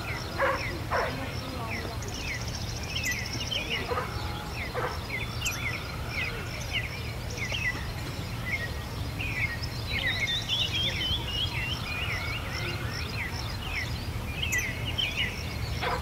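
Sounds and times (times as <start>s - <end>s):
low rumble of outdoor noise: 0.0s - 16.0s
songbirds chirping: 0.0s - 16.0s.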